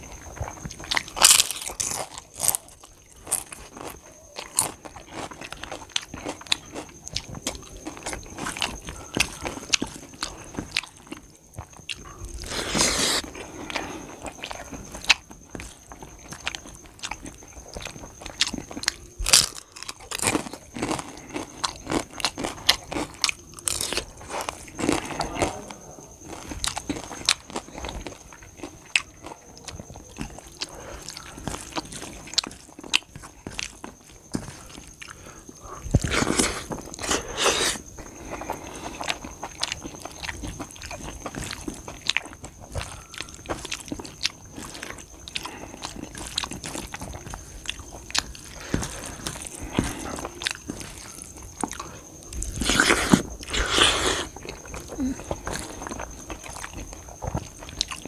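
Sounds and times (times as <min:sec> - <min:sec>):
faint steady high tone: 0:00.0 - 0:35.9, 0:38.0 - 0:52.7
person chewing food: 0:00.0 - 0:58.0.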